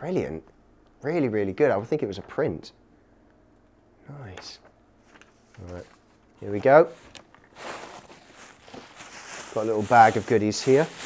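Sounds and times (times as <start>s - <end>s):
rustling in cardboard box: 6.9s - 11.0s.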